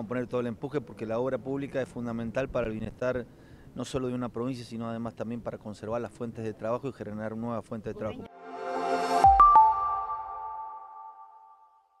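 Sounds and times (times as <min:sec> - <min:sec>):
bell-like electronic tones: 0:08.2 - 0:12.0.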